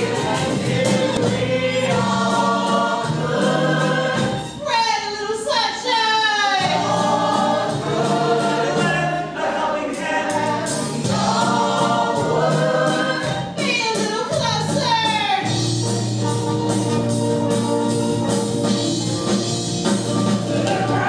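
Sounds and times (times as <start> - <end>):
chorus singing held notes: 0.0 - 4.7, 6.4 - 13.7, 20.1 - 21.0
instrumental accompaniment: 0.0 - 5.2, 6.6 - 21.0.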